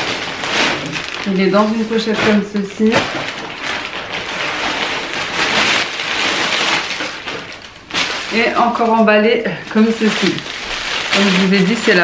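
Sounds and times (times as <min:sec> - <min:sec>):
plastic bag rustling and crinkling: 0:00.0 - 0:12.0.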